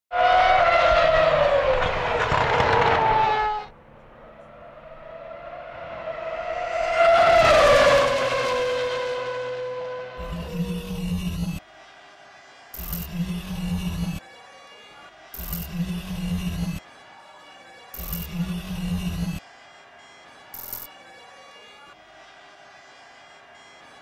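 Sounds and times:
racing car engine at high revs: 0:00.1 - 0:03.4, 0:04.3 - 0:11.6, 0:12.8 - 0:14.2, 0:15.4 - 0:16.8, 0:18.0 - 0:19.4.

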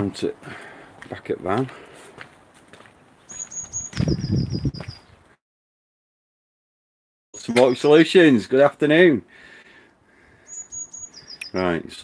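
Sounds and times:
small bird trilling: 0:03.3 - 0:05.1, 0:10.5 - 0:11.6.

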